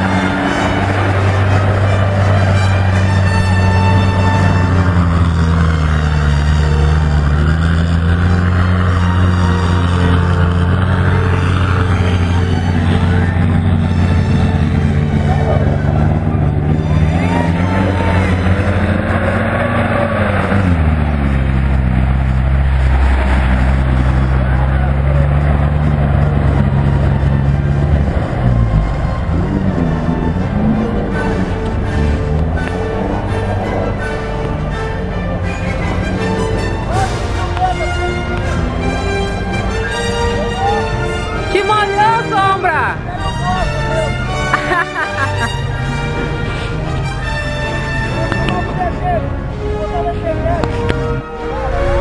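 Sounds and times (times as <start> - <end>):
vehicle engine revving: 0.0 - 52.0.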